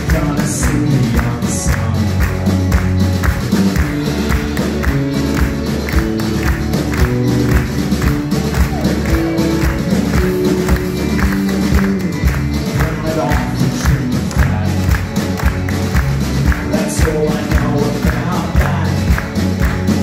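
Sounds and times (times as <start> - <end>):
live band playing upbeat song: 0.0 - 20.0
people clapping along: 0.0 - 20.0.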